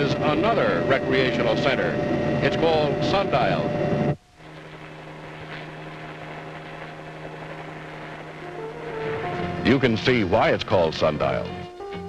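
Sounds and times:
helicopter drone: 0.0s - 12.0s.

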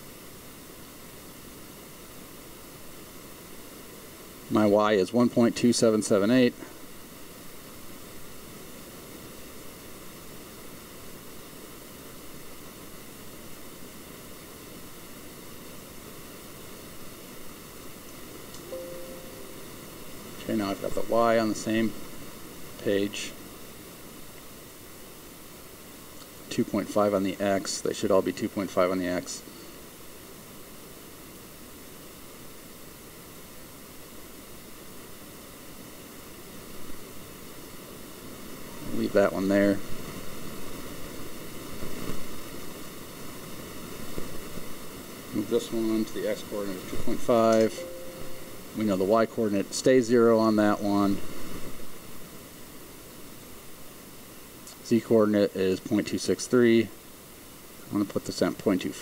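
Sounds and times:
microphone hiss: 0.0s - 59.0s.

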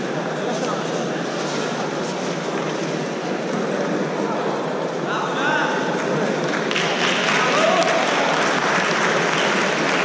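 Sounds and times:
spectators applauding: 6.0s - 10.0s.

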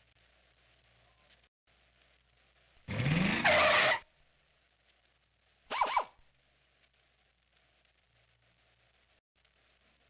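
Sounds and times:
tyres screeching: 2.9s - 4.1s.

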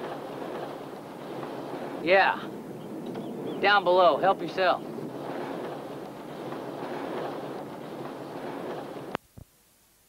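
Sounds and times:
wind noise: 0.0s - 9.2s.

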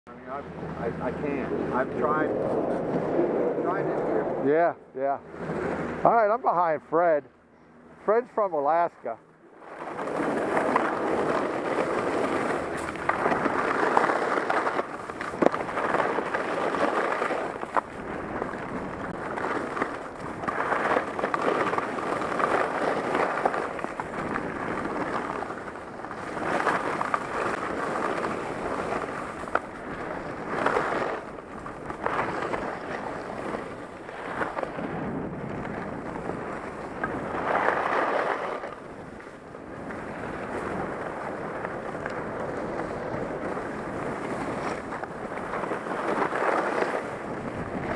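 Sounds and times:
skis scraping over snow: 0.1s - 4.5s, 5.1s - 7.3s, 8.0s - 47.9s
wind on microphone: 0.1s - 8.2s, 9.5s - 47.9s.

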